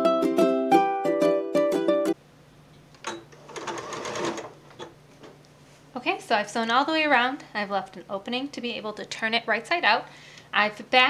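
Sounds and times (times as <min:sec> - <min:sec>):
faint steady hum: 0:02.2 - 0:11.0
sewing machine clicks: 0:03.0 - 0:04.9
sewing machine stitching: 0:03.0 - 0:04.9.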